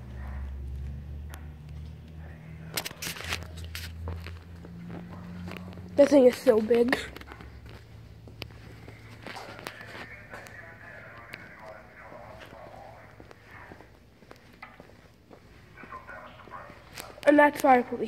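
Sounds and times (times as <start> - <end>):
distant conversation: 0.0 - 18.0
footsteps: 0.0 - 18.0.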